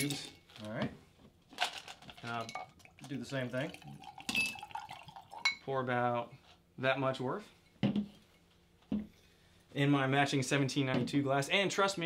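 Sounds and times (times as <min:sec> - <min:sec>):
glass clinking: 0:03.7 - 0:05.6.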